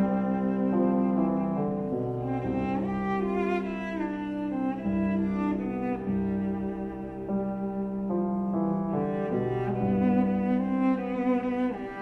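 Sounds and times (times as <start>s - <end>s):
bowed cello slow melody: 0.0s - 12.0s.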